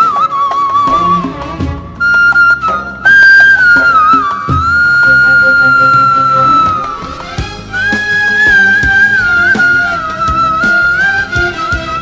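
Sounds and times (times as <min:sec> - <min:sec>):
electronic keyboard flute-like lead note: 0:00.0 - 0:12.0
low keyboard accompaniment: 0:00.0 - 0:12.0.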